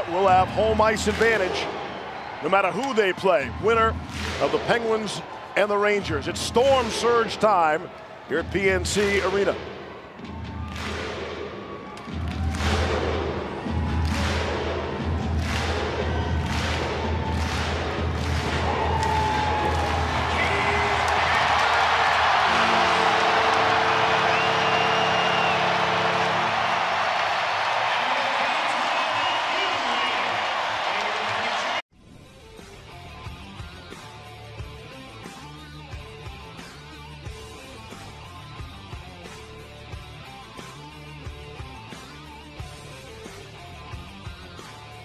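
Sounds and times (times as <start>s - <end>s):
crowd clapping in unison: 0.0s - 8.1s, 8.8s - 9.7s, 10.3s - 31.8s
crowd cheering: 0.0s - 31.8s
music: 0.0s - 45.0s.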